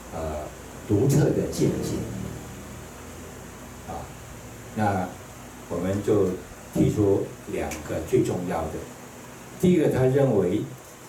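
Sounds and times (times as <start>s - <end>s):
low room hum and hiss: 0.0s - 11.0s
man saying ah: 0.9s - 2.2s.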